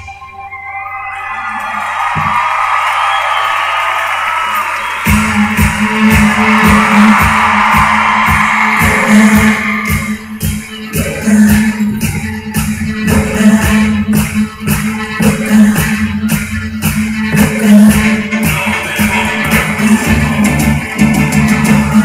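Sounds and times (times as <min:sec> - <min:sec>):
crowd cheering: 0:00.5 - 0:10.6, 0:18.5 - 0:22.0
kick drum beat with bass: 0:02.1 - 0:02.5, 0:05.0 - 0:22.0.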